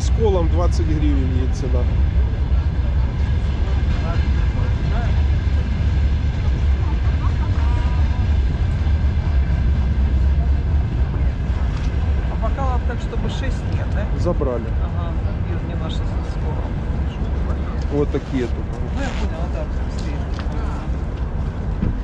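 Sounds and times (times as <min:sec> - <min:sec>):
distant voices talking: 0:00.0 - 0:21.8
steady low rumble: 0:00.0 - 0:22.0.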